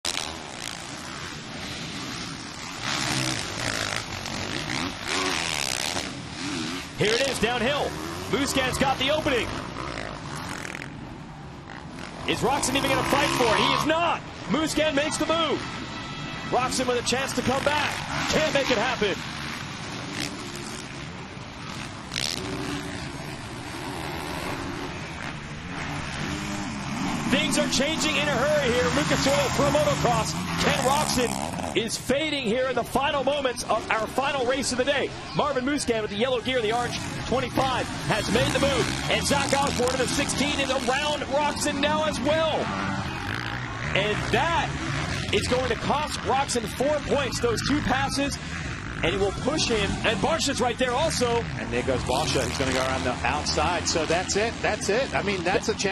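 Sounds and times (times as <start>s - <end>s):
motocross bike engines revving: 0.0s - 55.9s.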